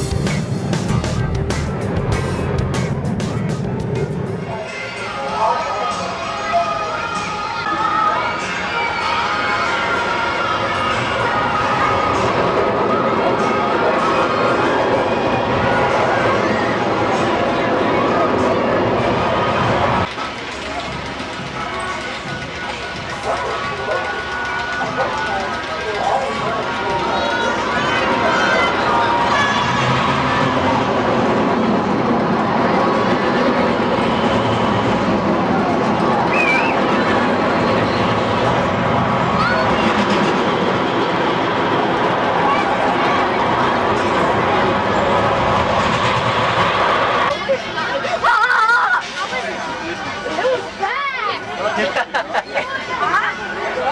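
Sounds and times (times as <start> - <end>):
roller coaster roaring on track: 0.0 - 53.9
people's voices: 2.8 - 53.9.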